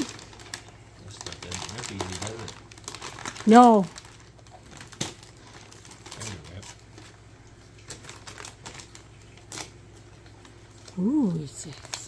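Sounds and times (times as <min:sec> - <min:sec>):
wrapping paper crinkling and tearing: 0:00.0 - 0:12.0.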